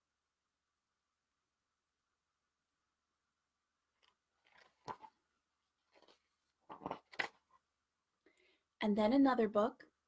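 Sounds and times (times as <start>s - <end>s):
paper page rustling: 5.9s - 7.4s.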